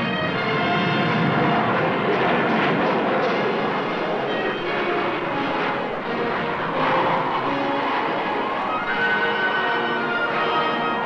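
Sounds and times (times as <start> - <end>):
jet engines roaring: 0.0 - 11.0.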